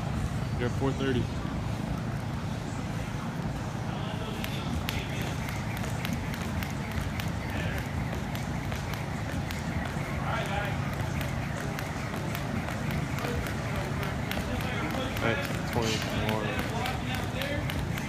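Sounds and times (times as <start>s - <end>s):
steady low hum: 0.0s - 18.0s
jump rope ticking on rubber floor: 4.2s - 18.0s
light footstep landings: 4.2s - 18.0s.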